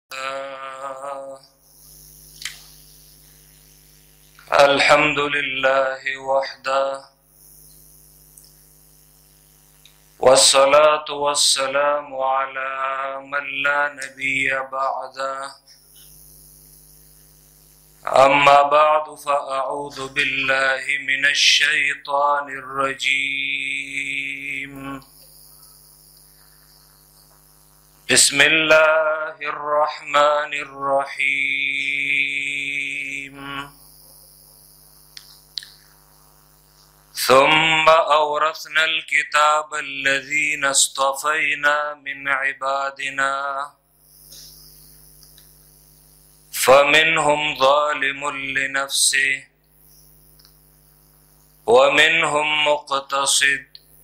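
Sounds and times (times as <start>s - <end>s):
man singing a drawn-out note: 0.1s - 1.6s, 4.4s - 7.1s, 10.2s - 15.6s, 18.0s - 25.1s, 28.1s - 33.8s, 37.2s - 43.8s, 46.6s - 49.5s, 51.7s - 53.8s
microphone hum: 0.1s - 54.0s
high hiss: 0.8s - 11.8s, 13.3s - 42.2s, 43.9s - 52.8s.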